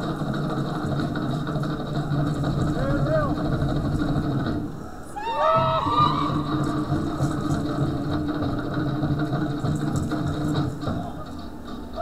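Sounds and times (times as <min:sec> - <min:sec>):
fast dance drumming: 0:00.0 - 0:12.0.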